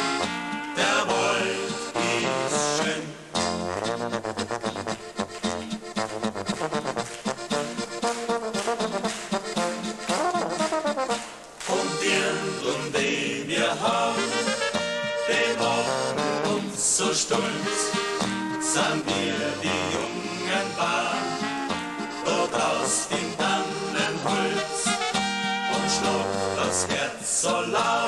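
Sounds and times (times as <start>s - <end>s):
trumpets: 0.0s - 13.1s, 13.8s - 27.0s
accordion: 0.0s - 28.0s
tuba: 0.0s - 28.0s.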